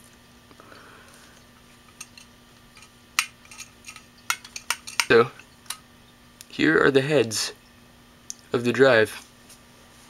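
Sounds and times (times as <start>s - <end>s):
small metal parts clicking: 1.9s - 5.8s.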